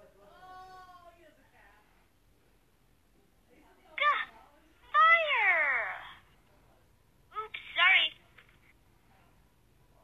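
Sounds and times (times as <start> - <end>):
cartoon character speaking: 4.0 - 4.3, 5.0 - 6.2, 7.4 - 8.2.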